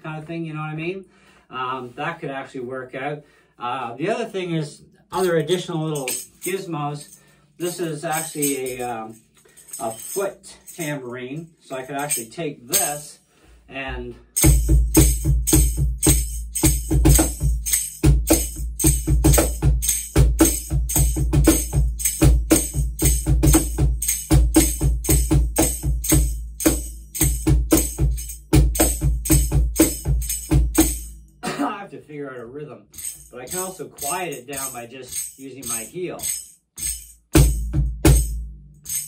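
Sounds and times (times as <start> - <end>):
man's voice: 0.0 - 9.2, 9.8 - 14.2, 31.4 - 32.8, 33.4 - 36.3
foot tambourine jingling: 5.1 - 13.3, 14.3 - 31.6, 32.9 - 39.0.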